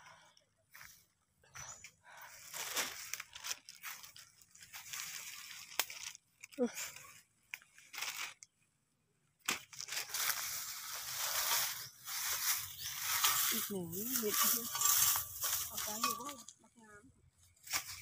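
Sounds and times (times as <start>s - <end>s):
dry bamboo leaves crackling: 2.0s - 8.6s, 9.4s - 16.6s, 17.5s - 18.0s
plastic bag rustling: 2.3s - 8.4s, 9.6s - 16.5s.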